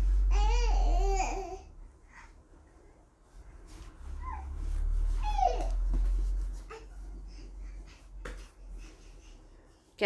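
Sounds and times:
low steady hum: 0:00.0 - 0:10.0
baby crawling on foam mat: 0:03.2 - 0:10.0.

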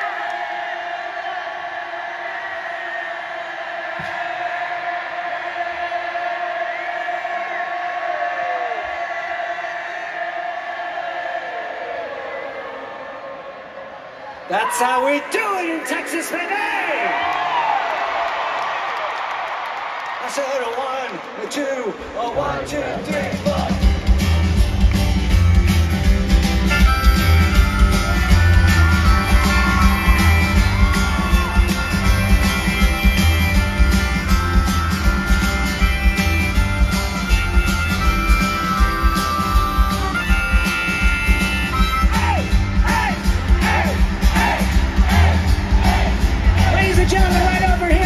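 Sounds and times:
drums: 0:22.4 - 0:48.0
bass guitar: 0:23.4 - 0:48.0.

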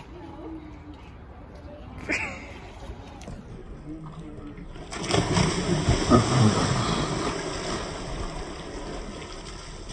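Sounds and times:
swimming pool ambience: 0:00.0 - 0:09.9
body splashing into water: 0:04.8 - 0:09.9.

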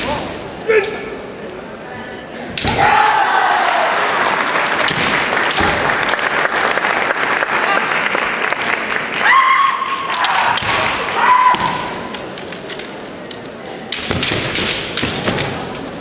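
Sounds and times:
bamboo swords clacking: 0:02.5 - 0:03.2, 0:04.2 - 0:06.3, 0:10.1 - 0:16.0
fencers shouting: 0:02.6 - 0:04.4, 0:09.2 - 0:12.1.

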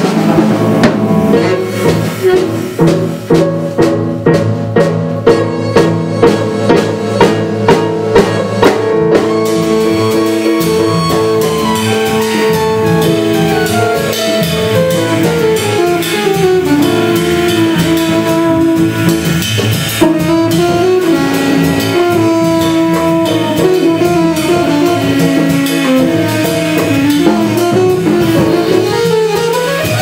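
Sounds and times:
drum kit: 0:00.0 - 0:30.0
piano: 0:00.0 - 0:30.0
saxophone: 0:01.3 - 0:02.8, 0:05.3 - 0:30.0
upright bass: 0:08.9 - 0:30.0.

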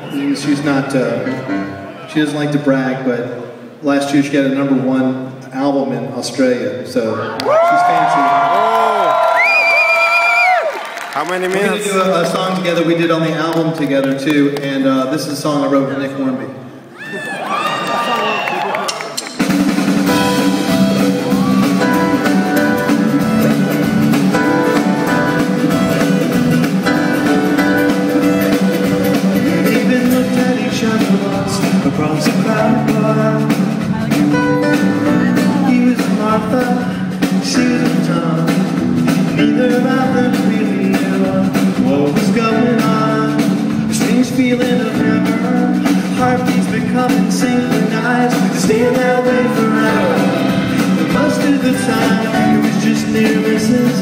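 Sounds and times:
live band playing: 0:00.0 - 0:03.8, 0:17.5 - 0:54.0
piano: 0:00.0 - 0:05.5, 0:19.0 - 0:54.0
drum kit: 0:18.9 - 0:54.0
electric guitars: 0:19.2 - 0:44.1, 0:45.0 - 0:54.0.

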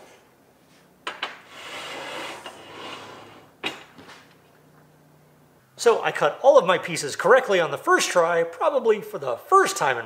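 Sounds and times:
metal scraping on metal: 0:01.5 - 0:03.5.

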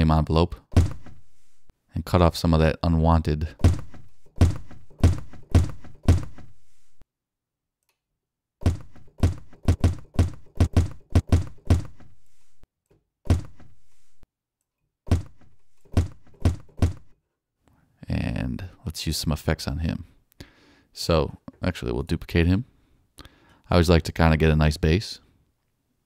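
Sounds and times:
dull low thuds: 0:00.7 - 0:01.2, 0:03.6 - 0:06.6, 0:08.6 - 0:12.2, 0:13.3 - 0:13.8, 0:15.1 - 0:17.1.

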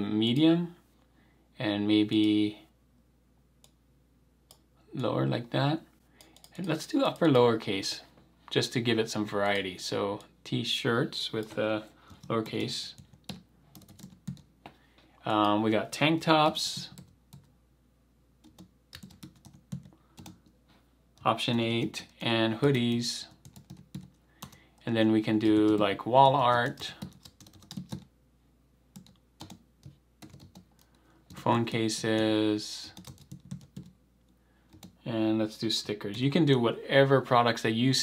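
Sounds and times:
typing on a computer keyboard: 0:06.2 - 0:07.3, 0:11.4 - 0:14.5, 0:18.4 - 0:20.5, 0:23.3 - 0:24.6, 0:26.5 - 0:28.1, 0:29.0 - 0:31.4, 0:33.0 - 0:34.0, 0:34.7 - 0:35.0.

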